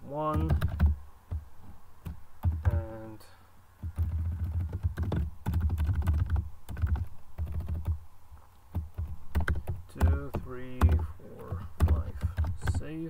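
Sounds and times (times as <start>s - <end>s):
keyboard typing: 0.3s - 1.4s, 2.0s - 3.1s, 3.8s - 8.0s, 8.7s - 12.9s.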